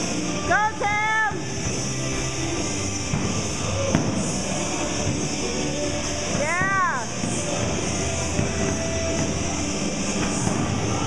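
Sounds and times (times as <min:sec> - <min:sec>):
noisy gym background: 0:00.0 - 0:11.0.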